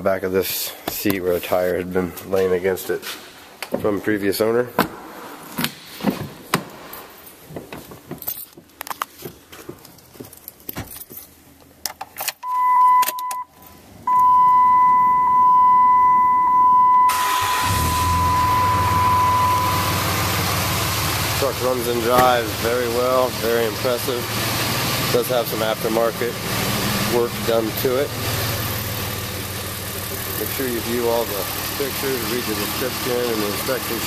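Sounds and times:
keys jangling: 8.2s - 8.6s
dashboard warning tone: 12.4s - 21.0s
diesel engine starting and idling: 14.2s - 34.0s.

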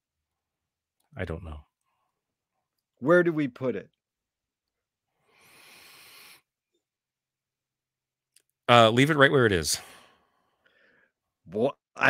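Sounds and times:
breath into microphone: 5.2s - 6.5s, 9.8s - 11.2s.

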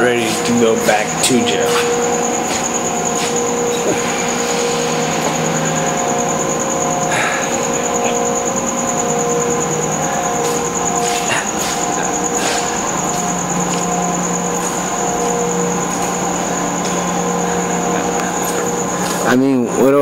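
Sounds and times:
mechanical drone with whine: 0.0s - 20.0s.

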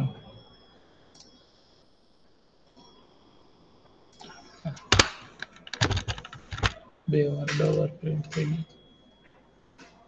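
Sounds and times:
keyboard key clicks: 4.9s - 6.8s.

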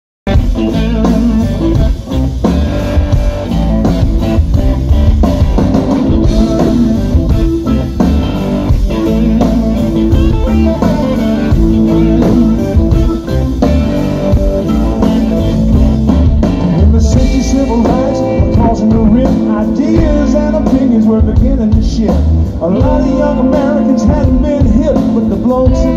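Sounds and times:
blues-rock band playing: 0.2s - 25.9s
electric guitar: 0.3s - 25.9s.

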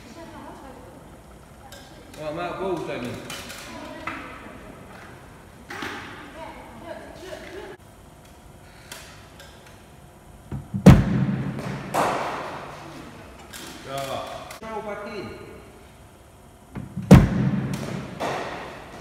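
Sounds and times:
cricket ball thuds echoing: 10.6s - 12.7s, 16.8s - 19.0s.

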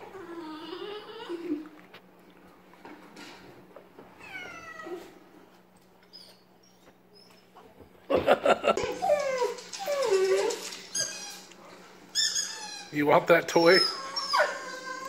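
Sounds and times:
dog whining: 0.0s - 1.8s, 4.2s - 5.2s, 6.0s - 7.6s, 8.8s - 13.0s, 13.6s - 15.0s.

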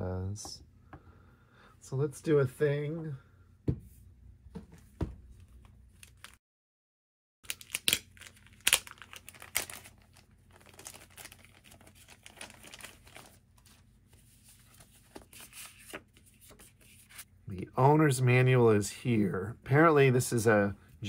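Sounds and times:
plastic bag crinkling: 7.4s - 13.6s
paper rustling: 8.2s - 17.3s.

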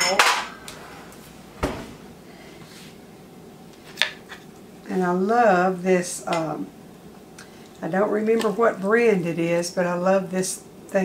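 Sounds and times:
oven door thump: 1.6s - 2.0s.

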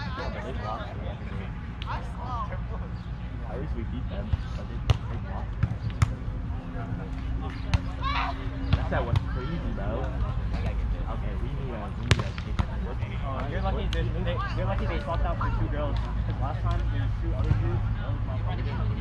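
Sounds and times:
players calling out: 0.0s - 19.0s.

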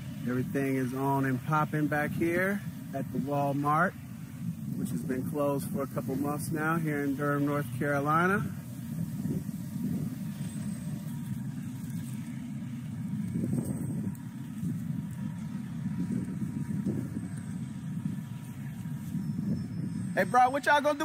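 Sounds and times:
diesel construction machinery rumbling: 0.0s - 21.0s.

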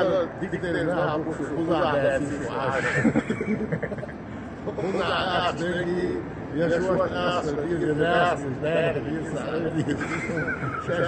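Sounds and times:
elderly man talking: 0.0s - 3.5s, 4.6s - 11.0s.

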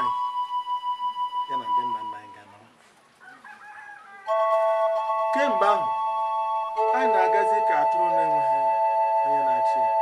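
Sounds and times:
man's voice: 1.5s - 2.7s, 5.2s - 5.9s, 6.8s - 8.6s
rooster crowing: 3.2s - 5.2s.

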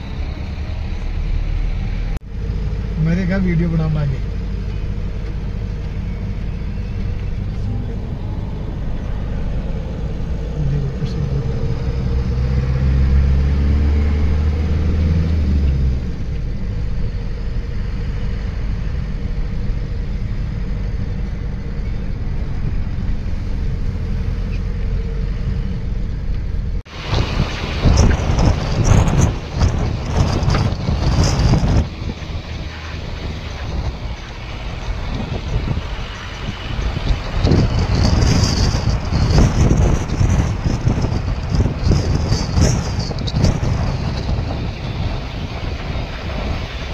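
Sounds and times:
traffic noise: 0.0s - 46.9s
vehicle engine and road rumble: 0.0s - 46.9s
wind buffeting microphone: 4.0s - 46.9s.

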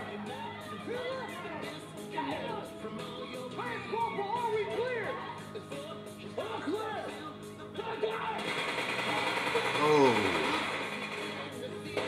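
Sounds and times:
person speaking: 9.8s - 10.6s.

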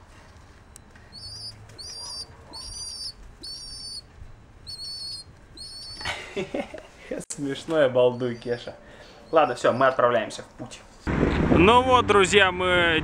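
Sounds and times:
pigeon chick peeping: 1.1s - 6.1s.

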